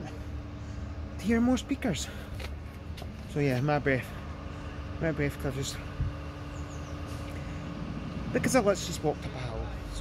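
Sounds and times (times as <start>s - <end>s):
distant city traffic rumble: 0.0s - 10.0s.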